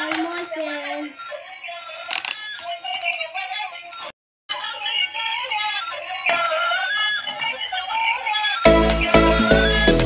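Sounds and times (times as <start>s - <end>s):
electronic toy melody with singing: 0.2s - 10.0s.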